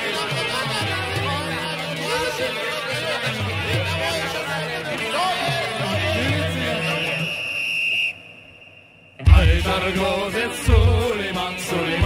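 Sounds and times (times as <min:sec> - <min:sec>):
music: 0:00.0 - 0:07.4, 0:09.2 - 0:12.0
steady high whistle tone: 0:06.5 - 0:10.3.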